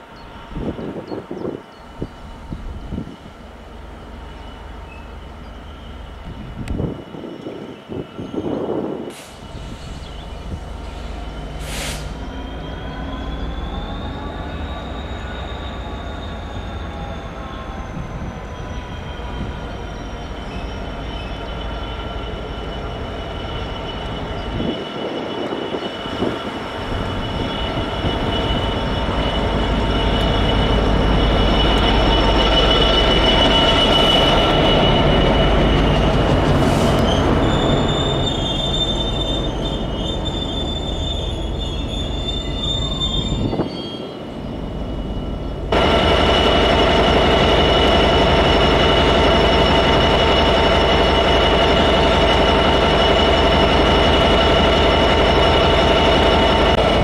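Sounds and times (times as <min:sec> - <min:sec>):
diesel locomotive passing: 0:00.0 - 0:57.0
rumble of freight wagons: 0:00.0 - 0:57.0
train wheels squealing: 0:00.0 - 0:57.0.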